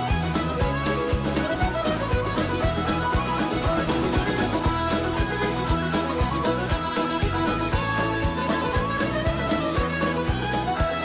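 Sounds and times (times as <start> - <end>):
fiddle melody: 0.0 - 11.0
steady drum beat: 0.0 - 11.0.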